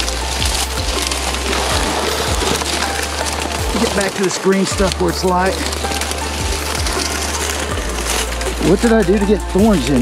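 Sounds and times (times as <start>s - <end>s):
grass rustling: 0.0s - 10.0s
wing fabric rustling: 0.0s - 10.0s.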